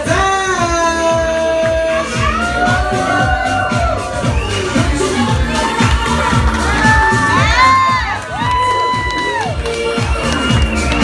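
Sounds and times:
club dance music: 0.0 - 11.0
crowd cheering and whooping: 2.0 - 11.0.

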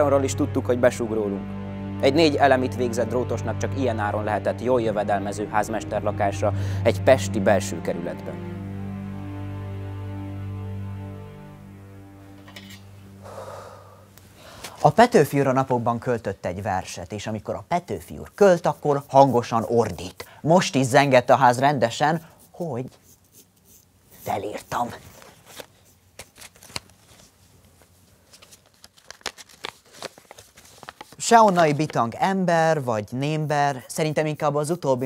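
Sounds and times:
man speaking: 0.0 - 8.5, 14.8 - 23.0, 24.2 - 25.0, 31.2 - 35.0
low steady music tone: 0.0 - 23.4
man breathing in: 6.6 - 6.8, 13.2 - 14.8
paper crackling and rustling: 24.5 - 32.2.

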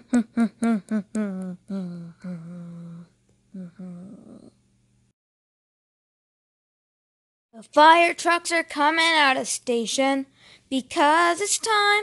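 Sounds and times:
person humming: 0.0 - 4.6.

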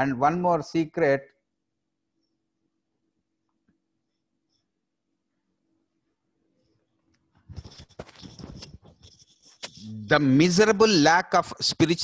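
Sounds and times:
book pages rustling and turning: 7.4 - 9.8.

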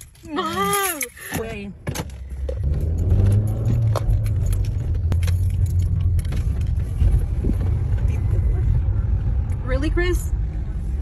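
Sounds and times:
car cabin rumble: 1.4 - 11.0.

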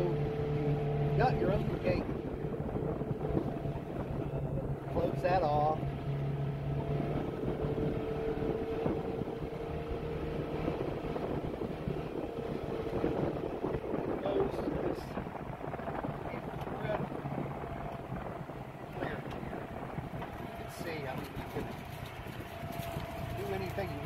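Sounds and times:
atv engine running: 0.0 - 24.0.

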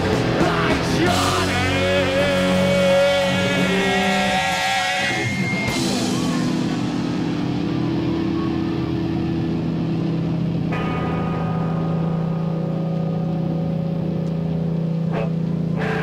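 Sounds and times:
amplified guitar drone: 0.0 - 16.0.

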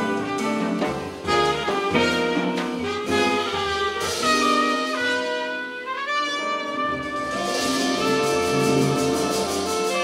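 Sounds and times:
jazz horn section holding notes: 0.0 - 10.0.

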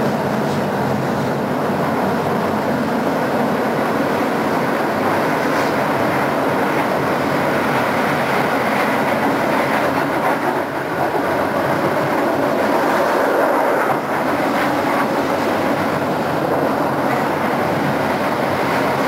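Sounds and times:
tram wheels rumbling on track: 0.0 - 19.0
faint rail clicks: 5.0 - 7.0.

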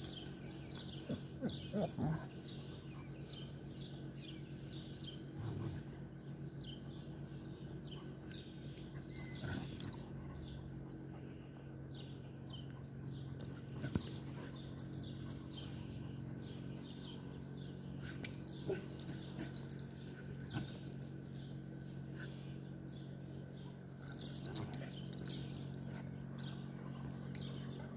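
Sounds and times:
birds chirping: 0.0 - 27.9
dogs playing roughly: 0.0 - 27.9
low hum: 0.0 - 27.9.

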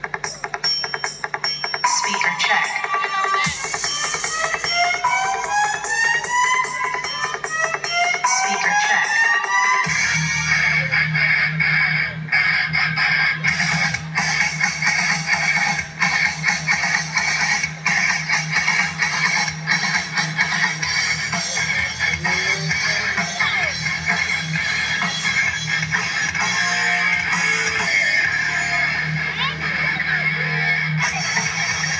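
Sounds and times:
music with heavy bass: 0.0 - 31.9.

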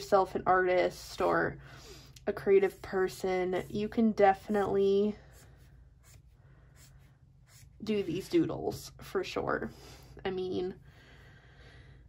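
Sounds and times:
marker scratching on paper: 2.4 - 8.4.

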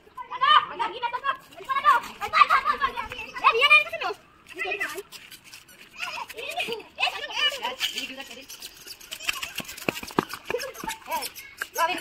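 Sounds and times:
adults and children talking: 0.0 - 12.0.

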